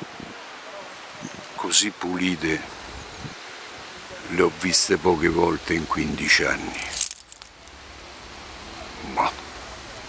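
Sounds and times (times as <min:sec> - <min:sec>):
faint outdoor background hiss: 0:00.0 - 0:10.0.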